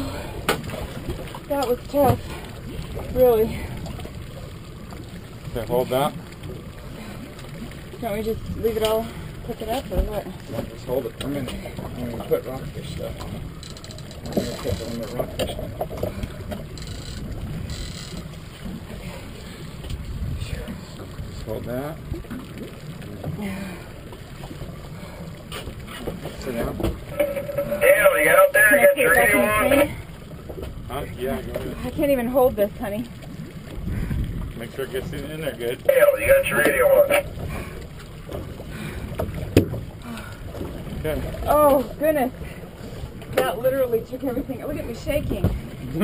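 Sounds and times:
boat low rumble: 0:00.0 - 0:46.0.

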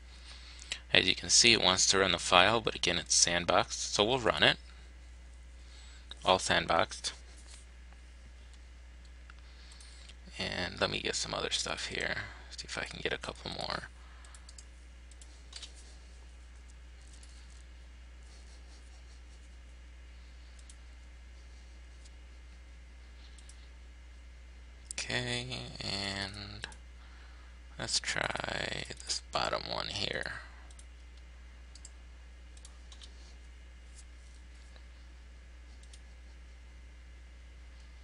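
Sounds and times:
steady low hum: 0:00.0 - 0:38.0
computer mouse clicks: 0:14.2 - 0:15.8, 0:20.5 - 0:20.8, 0:23.3 - 0:23.6, 0:30.7 - 0:33.2, 0:35.8 - 0:36.1.

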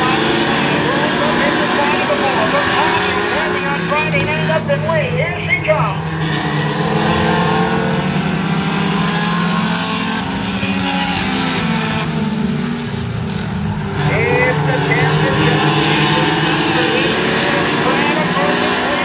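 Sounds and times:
race car engines drone: 0:00.0 - 0:19.0.

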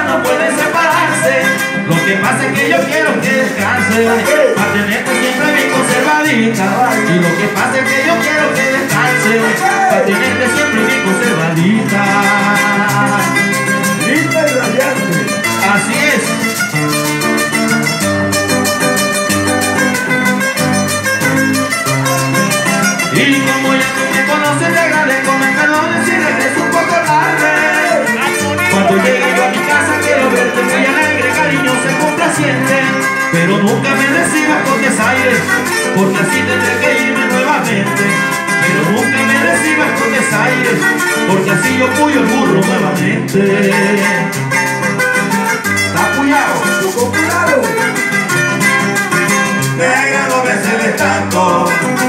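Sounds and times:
low bass notes: 0:00.0 - 0:45.0
lead guitar picking melody: 0:00.0 - 0:52.0
strummed rhythm guitar: 0:00.0 - 0:52.0.

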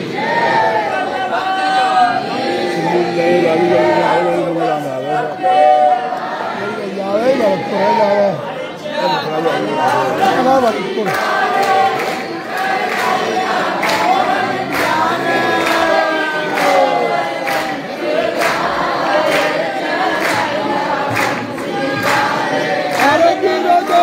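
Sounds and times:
crowd singing a chant: 0:00.0 - 0:24.0.

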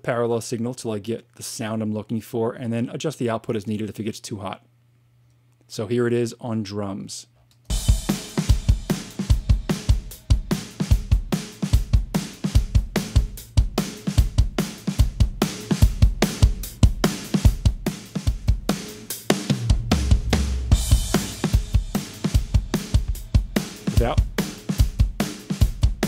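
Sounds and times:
drum kit groove: 0:07.7 - 0:26.0.

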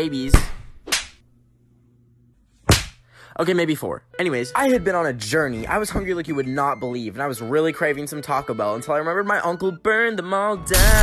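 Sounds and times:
loud sharp slap: 0:00.3 - 0:01.2, 0:02.7 - 0:03.0.

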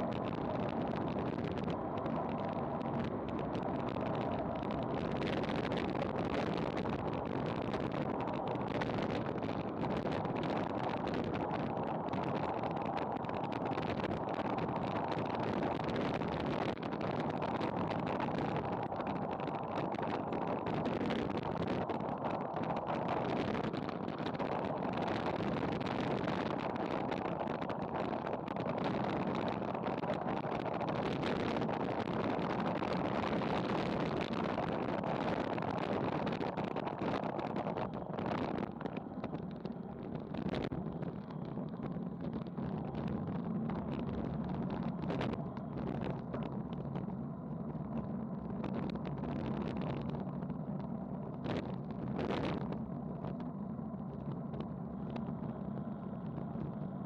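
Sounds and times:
bike tyres on asphalt: 0:00.0 - 0:57.0
wind buffeting microphone: 0:00.0 - 0:57.0.

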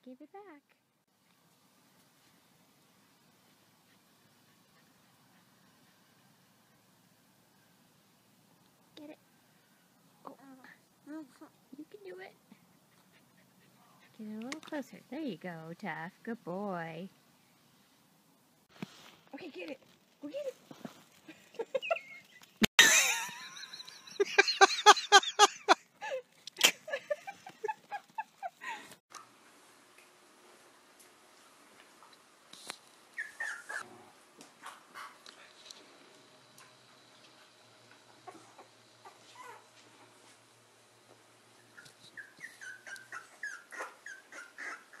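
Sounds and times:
puppies crying: 0:42.2 - 0:45.0.

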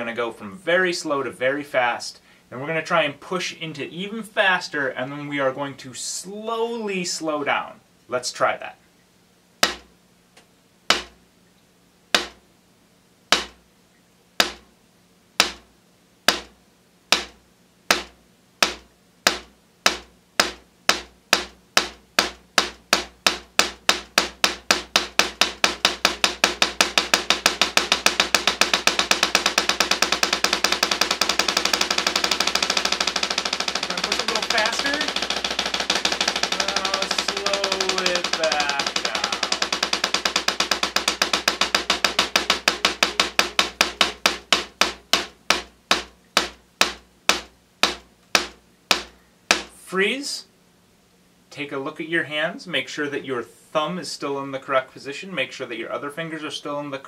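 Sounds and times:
drumsticks striking practice pad: 0:09.6 - 0:09.9, 0:10.9 - 0:11.2, 0:12.1 - 0:12.4, 0:13.3 - 0:13.6, 0:14.4 - 0:14.7, 0:15.4 - 0:49.8.

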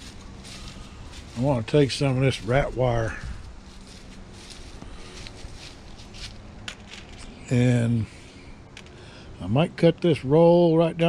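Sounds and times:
wire mesh rustling and clicking: 0:06.1 - 0:07.4.

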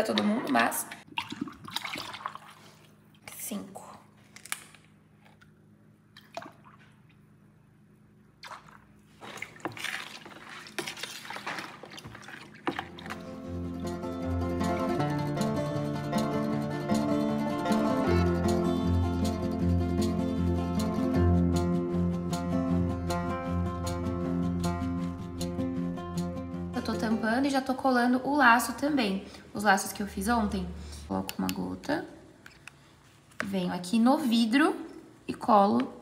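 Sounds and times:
liquid pouring and stirring: 0:08.4 - 0:13.4
instrumental music with bass line: 0:13.0 - 0:27.4.

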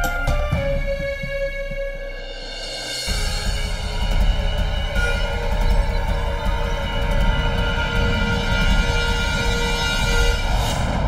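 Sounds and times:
tense sustained tones: 0:00.6 - 0:11.0.

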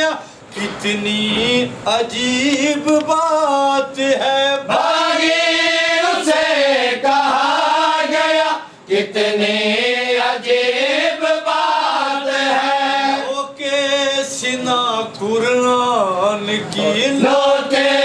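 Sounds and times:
men chanting: 0:00.0 - 0:18.0.

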